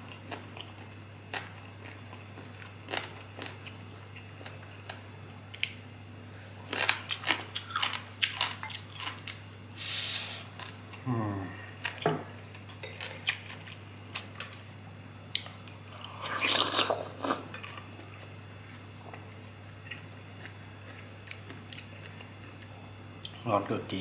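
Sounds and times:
chewing: 0.1s - 5.0s, 6.7s - 9.4s
person humming: 11.0s - 11.6s.

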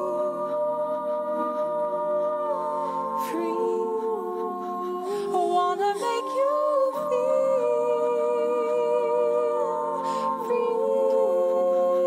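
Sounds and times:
looped hummed vocal harmonies: 0.0s - 12.0s
person singing live: 0.0s - 12.0s.

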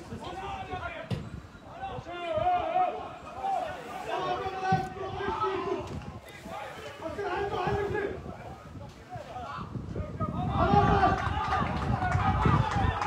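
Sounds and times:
men shouting outdoors: 0.0s - 13.0s.

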